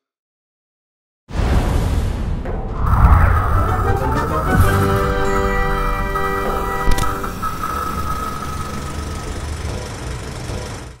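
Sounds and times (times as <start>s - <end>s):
low rumbling: 2.5s - 10.3s.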